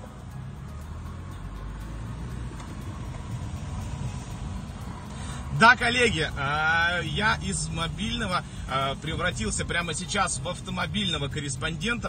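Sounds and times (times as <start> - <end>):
car engine rumble: 0.0 - 12.0
road noise inside car: 0.0 - 12.0.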